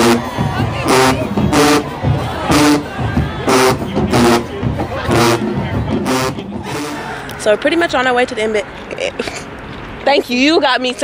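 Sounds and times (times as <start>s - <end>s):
group shouting rhythmic chant: 0.0s - 7.4s.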